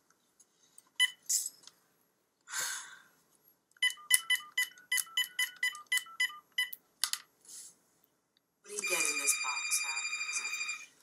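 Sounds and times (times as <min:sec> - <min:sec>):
phone keypad beeps: 0:03.8 - 0:06.8, 0:08.8 - 0:10.8.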